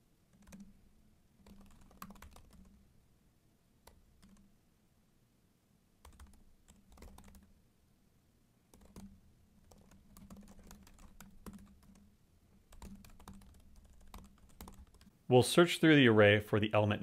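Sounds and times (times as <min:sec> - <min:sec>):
computer keyboard typing: 0:00.3 - 0:00.7, 0:01.4 - 0:02.8, 0:03.8 - 0:04.5, 0:06.0 - 0:07.5, 0:08.7 - 0:12.1, 0:12.7 - 0:15.1.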